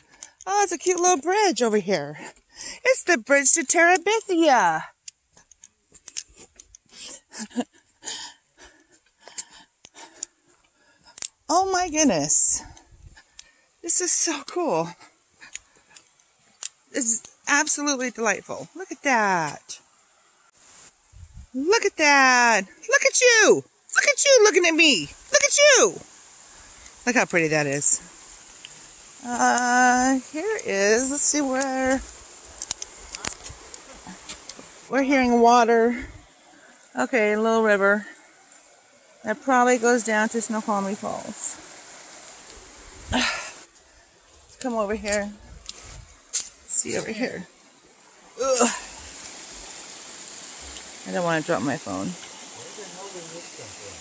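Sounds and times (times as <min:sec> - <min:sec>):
creek running: 0:00.0 - 0:54.0.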